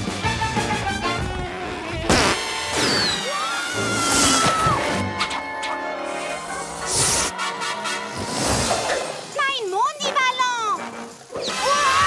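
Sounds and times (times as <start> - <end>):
action score music: 3.8 - 11.7
cartoon characters yelling: 11.4 - 12.0.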